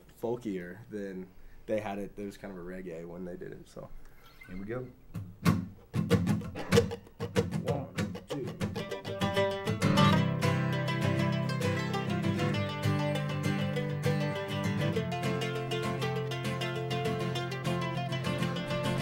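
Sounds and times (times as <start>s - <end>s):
guitar plucked notes: 5.4s - 19.0s
person counting in: 7.5s - 8.9s
sustained guitar chords: 7.9s - 19.0s.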